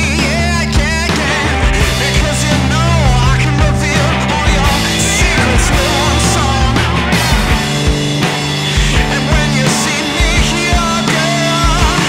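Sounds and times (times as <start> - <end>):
drum hits: 0.0 - 12.0
rock band playing: 0.0 - 12.0
sustained bass notes: 0.0 - 12.0
melodic line bending in pitch: 3.8 - 8.2.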